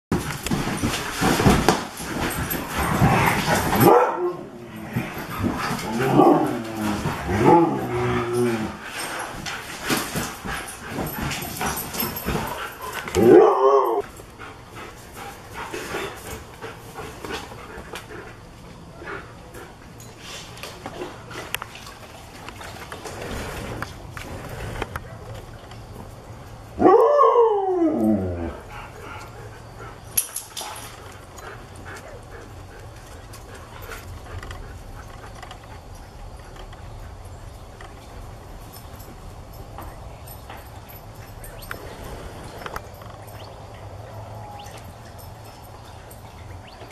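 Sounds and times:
dogs scrabbling and knocking: 0:00.1 - 0:13.5
dogs barking and play noises: 0:00.1 - 0:46.9
dog howling: 0:13.2 - 0:14.0, 0:26.8 - 0:28.6.

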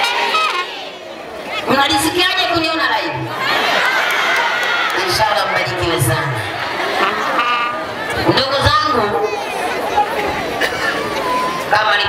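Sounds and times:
crowd chatter: 0:00.0 - 0:12.0
speech over public-address system: 0:01.5 - 0:03.4, 0:04.9 - 0:12.0.

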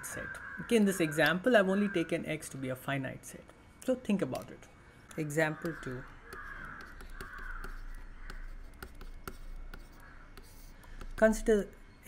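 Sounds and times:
bird cawing: 0:00.0 - 0:02.3, 0:05.2 - 0:11.2
low electrical hum: 0:00.0 - 0:12.0
stylus ticking on tablet: 0:05.6 - 0:11.7.

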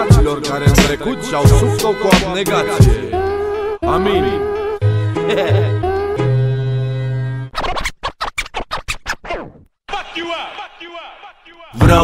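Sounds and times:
hip-hop music: 0:00.0 - 0:07.4, 0:09.9 - 0:12.0
turntable record scratching: 0:07.5 - 0:09.6.

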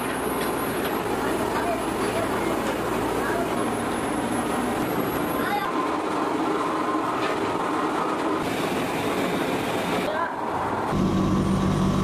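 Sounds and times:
gas burners roaring: 0:00.0 - 0:12.0
workshop machinery rumble: 0:00.0 - 0:12.0.

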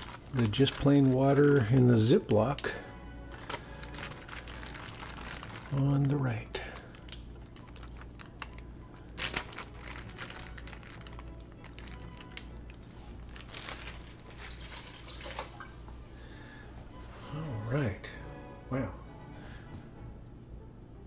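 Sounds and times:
plastic bag crinkling: 0:00.0 - 0:15.6
low steady hum: 0:00.0 - 0:21.0.

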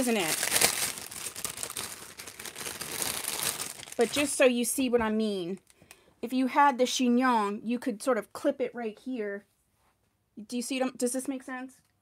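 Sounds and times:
plastic bag crinkling: 0:00.0 - 0:04.6.

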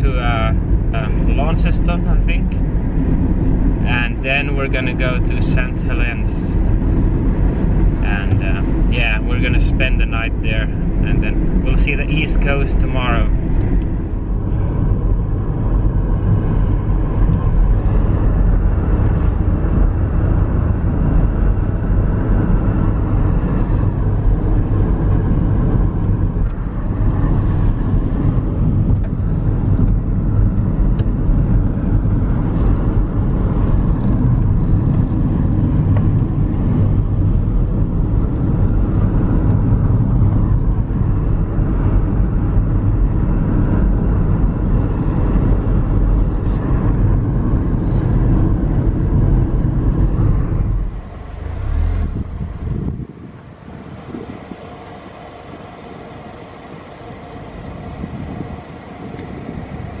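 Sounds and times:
car engine and road noise: 0:00.0 - 1:00.0.

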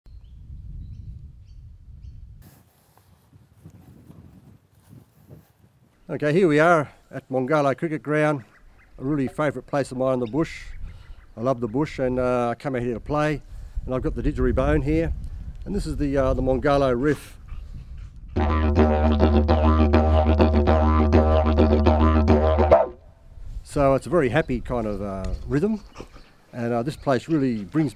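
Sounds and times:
slide didgeridoo rhythmic riff: 0:18.3 - 0:23.0
bird chirping: 0:25.6 - 0:27.9.

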